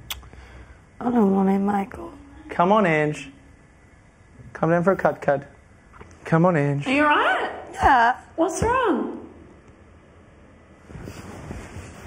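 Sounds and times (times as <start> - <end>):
clothing rustling on microphone: 10.8 - 12.0.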